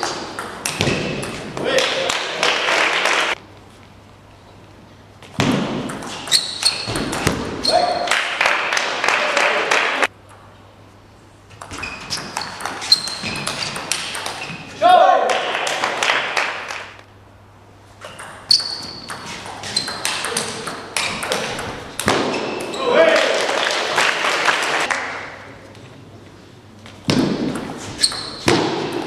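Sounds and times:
crowd noise: 0:01.6 - 0:03.4
person shouting: 0:14.8 - 0:15.3.

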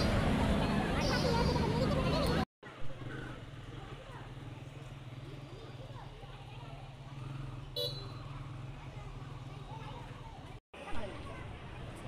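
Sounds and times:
traffic engine hum: 0:00.0 - 0:12.0
vehicle horn beep: 0:07.8 - 0:08.3.

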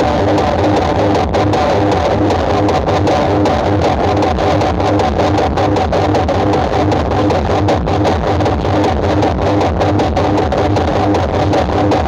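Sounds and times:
loud bass-heavy music with drums: 0:00.0 - 0:12.0.

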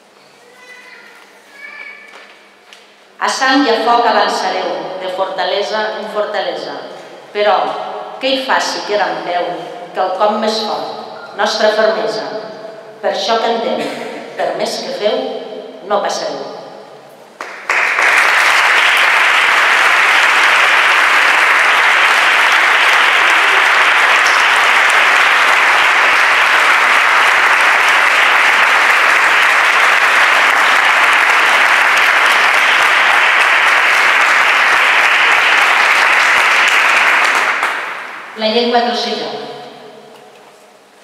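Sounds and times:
crowd applauding: 0:17.4 - 0:38.4.

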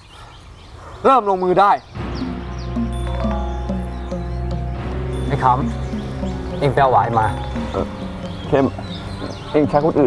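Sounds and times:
sustained background music: 0:01.9 - 0:10.0
man speaking: 0:05.2 - 0:07.9.

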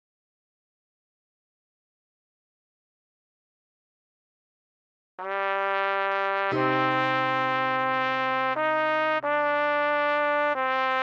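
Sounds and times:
trumpet playing low held note: 0:05.3 - 0:11.0.

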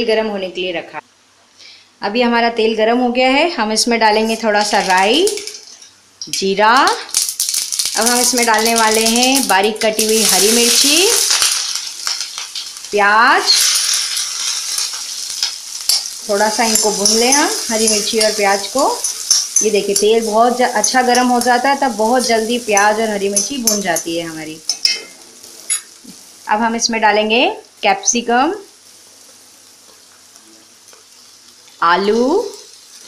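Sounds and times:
onion sizzling in hot oil: 0:04.0 - 0:33.0
spatula stirring: 0:10.0 - 0:25.1.

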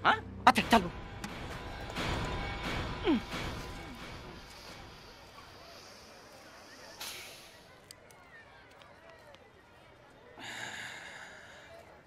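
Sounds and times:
man breathing: 0:10.4 - 0:12.0.

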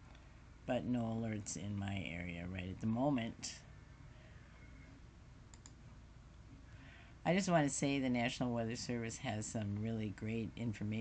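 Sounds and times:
computer mouse clicks: 0:05.5 - 0:05.8.

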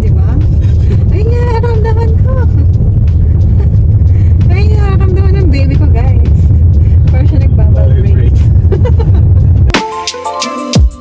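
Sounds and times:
woman's voice: 0:00.0 - 0:02.8, 0:04.4 - 0:08.2
car engine and road rumble: 0:00.0 - 0:09.8.

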